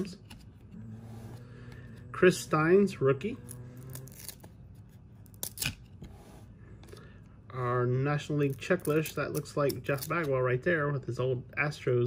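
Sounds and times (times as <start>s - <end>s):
cards sliding with papery swishes: 6.0s - 6.6s.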